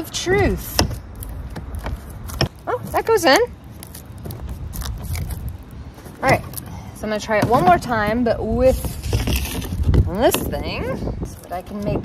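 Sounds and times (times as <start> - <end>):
plastic frame clicks and scrapes: 8.7 - 10.5.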